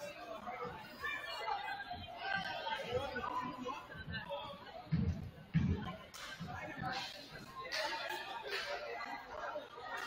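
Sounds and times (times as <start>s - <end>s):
chatter of many people: 0.0s - 10.0s.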